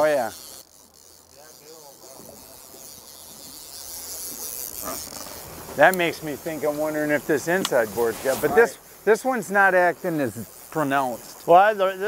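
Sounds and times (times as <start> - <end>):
outboard motor humming: 0.0 - 12.0
wind hiss: 1.4 - 12.0.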